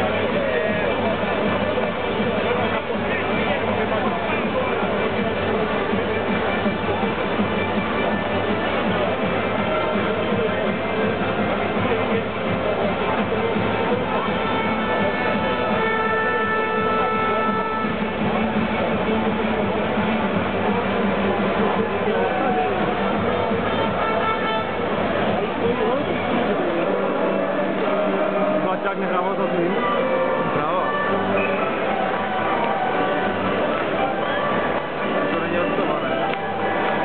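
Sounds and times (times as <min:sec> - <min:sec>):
crowd talking: 0:00.0 - 0:37.0
music over sound system: 0:00.0 - 0:37.0.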